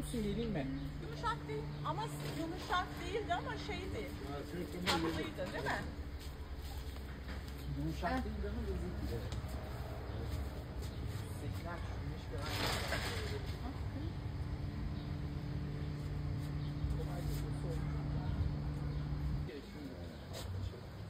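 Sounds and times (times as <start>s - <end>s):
steady low hum: 0.0s - 20.8s
rustle of leaves and branches: 1.0s - 14.5s, 15.7s - 20.9s
faint indistinct voices: 16.4s - 21.0s.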